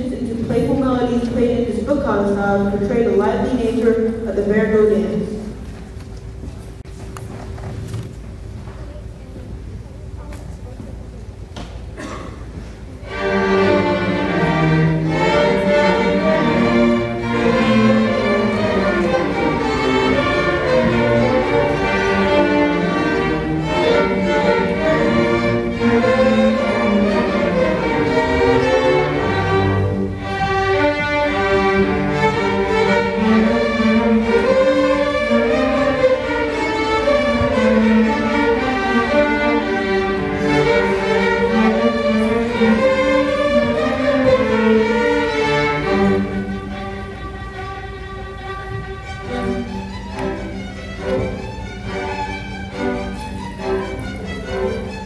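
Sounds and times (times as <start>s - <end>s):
string orchestra playing dance: 12.8s - 55.0s.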